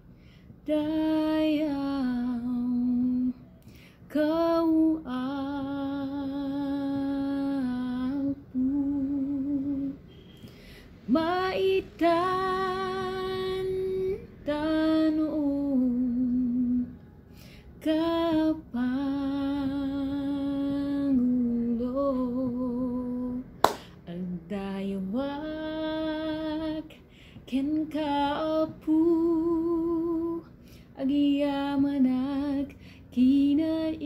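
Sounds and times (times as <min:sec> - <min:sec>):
woman breathing in: 0:00.0 - 0:00.6, 0:03.6 - 0:04.1, 0:10.4 - 0:11.0, 0:17.3 - 0:17.8, 0:27.0 - 0:27.4, 0:30.5 - 0:30.9, 0:32.7 - 0:33.1
woman singing unaccompanied: 0:00.6 - 0:10.1, 0:11.0 - 0:17.0, 0:17.8 - 0:34.0.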